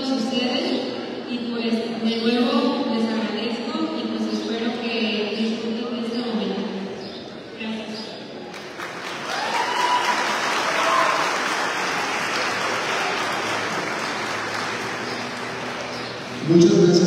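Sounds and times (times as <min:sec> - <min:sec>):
audience applauding: 0:08.5 - 0:16.8.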